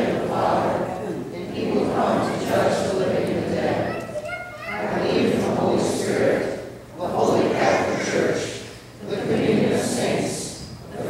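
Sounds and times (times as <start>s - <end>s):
voices echoing in a church: 0.0s - 11.0s.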